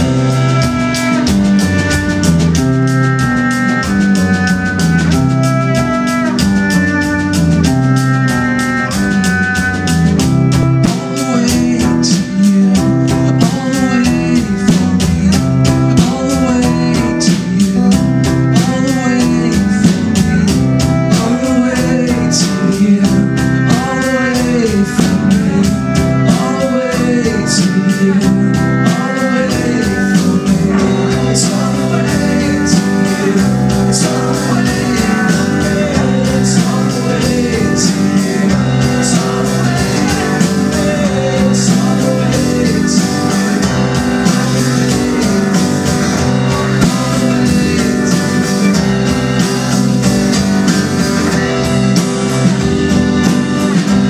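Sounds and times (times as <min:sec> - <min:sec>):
acoustic guitar: 0:00.0 - 0:54.0
cello: 0:00.0 - 0:54.0
drum kit beat: 0:00.0 - 0:54.0
electric guitar: 0:00.0 - 0:54.0.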